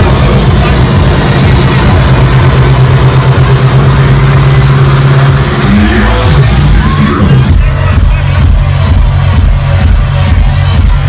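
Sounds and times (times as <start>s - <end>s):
distorted electronic dance music: 0.0s - 11.0s.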